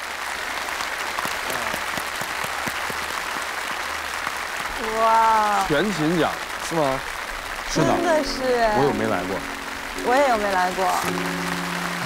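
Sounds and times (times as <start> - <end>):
people applauding: 0.0 - 12.0.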